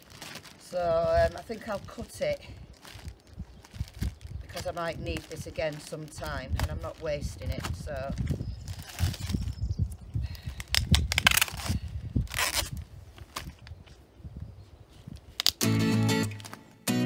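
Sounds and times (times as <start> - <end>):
plastic packaging crinkling: 0.0 - 9.6, 10.6 - 13.7
acoustic guitar music: 15.6 - 17.0.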